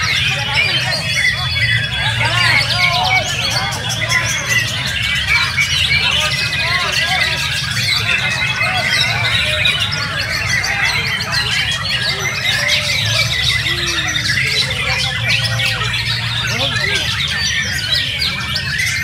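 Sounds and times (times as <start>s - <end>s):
background murmur: 0.0s - 19.0s
songbirds singing: 0.0s - 19.0s.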